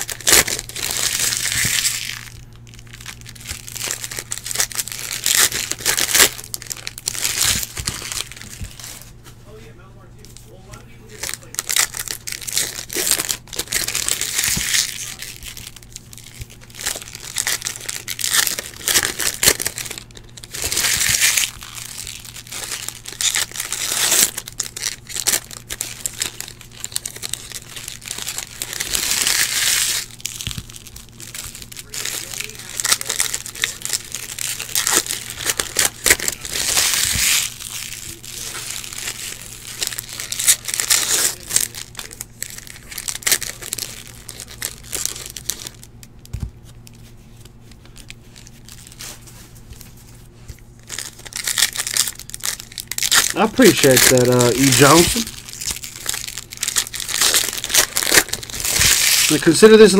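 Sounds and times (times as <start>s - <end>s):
foil wrappers tearing and crinkling: 0.0s - 9.6s, 10.2s - 59.9s.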